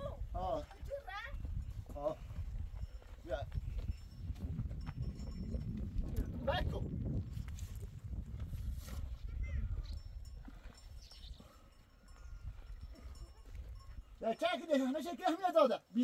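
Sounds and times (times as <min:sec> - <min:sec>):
wind buffeting microphone: 0:00.0 - 0:14.2.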